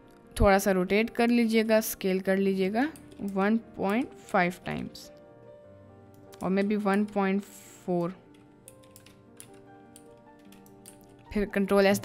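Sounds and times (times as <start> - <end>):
faint background music: 0.0 - 12.0
computer keyboard clicks: 6.1 - 7.2, 8.3 - 11.3.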